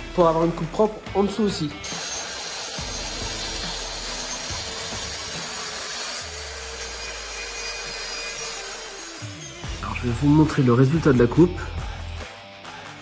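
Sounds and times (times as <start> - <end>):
circular saw cutting panel: 1.8 - 11.2.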